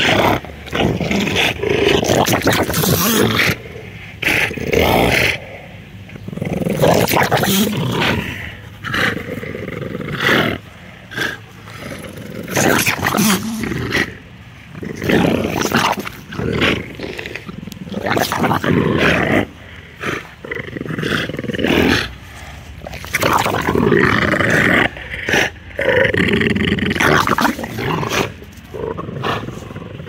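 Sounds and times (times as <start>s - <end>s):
dogs growling in play: 0.0s - 30.0s.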